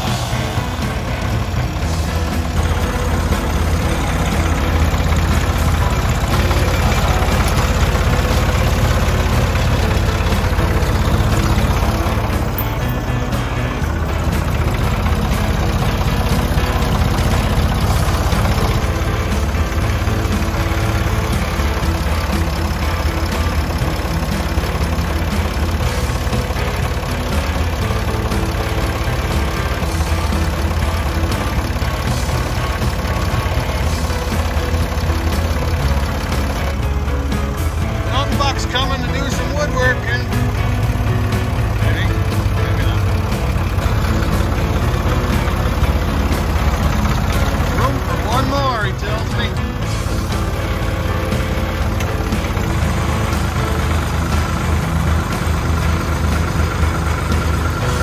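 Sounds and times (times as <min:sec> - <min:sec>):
background music: 0:00.0 - 0:58.0
tractor engine idling: 0:00.0 - 0:58.0.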